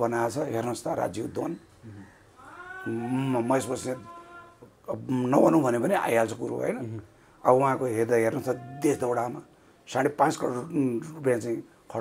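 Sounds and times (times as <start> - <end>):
man speaking: 2.8 - 12.0.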